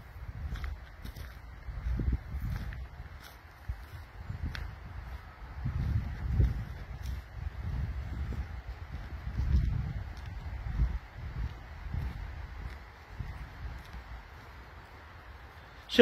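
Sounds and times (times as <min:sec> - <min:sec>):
wind buffeting microphone: 0:00.0 - 0:15.8.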